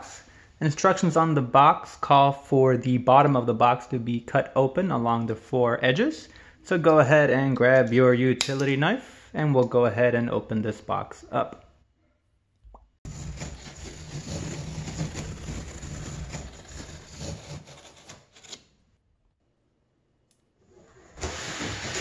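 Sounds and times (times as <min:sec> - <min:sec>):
cardboard scraping: 0:13.0 - 0:18.8, 0:20.8 - 0:22.0
knife slicing cardboard: 0:13.1 - 0:18.8.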